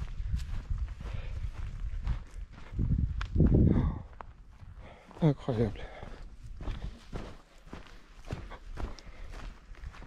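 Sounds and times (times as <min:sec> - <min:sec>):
footsteps on dry grass and stones: 0:00.0 - 0:10.0.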